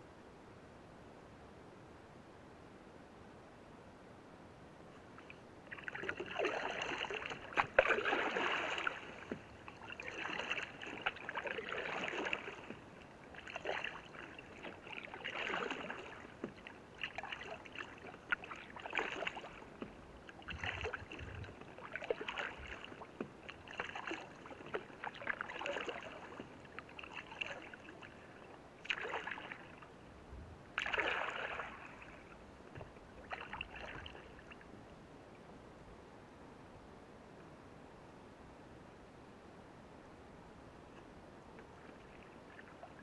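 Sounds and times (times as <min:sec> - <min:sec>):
canoe paddle splashing in water: 0:05.2 - 0:29.9, 0:30.7 - 0:34.7.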